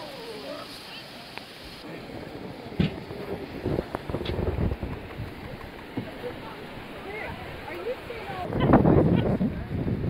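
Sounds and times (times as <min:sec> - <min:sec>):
surf on beach: 0:00.0 - 0:10.0
wind gusting on microphone: 0:01.8 - 0:10.0.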